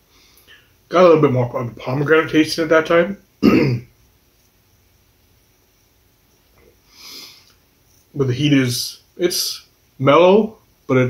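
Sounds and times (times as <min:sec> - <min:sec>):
sniff through the nose: 0:06.9 - 0:07.5.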